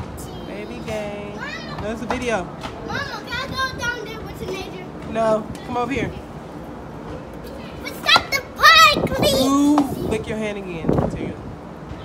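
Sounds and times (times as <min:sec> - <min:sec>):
children playing: 0:00.0 - 0:10.2.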